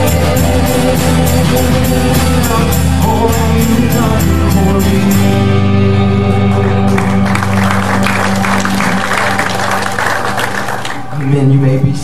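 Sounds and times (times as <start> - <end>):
congregation clapping: 6.6 - 11.6.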